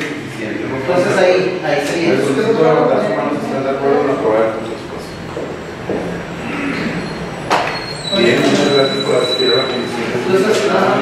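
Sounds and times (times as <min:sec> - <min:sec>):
faint indistinct voices: 0:00.0 - 0:11.0
steady background noise: 0:00.0 - 0:11.0.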